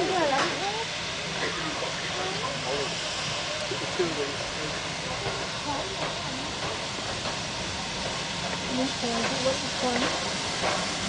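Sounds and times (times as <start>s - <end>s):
people chattering: 0.0s - 3.0s
steam locomotive hissing: 0.0s - 11.0s.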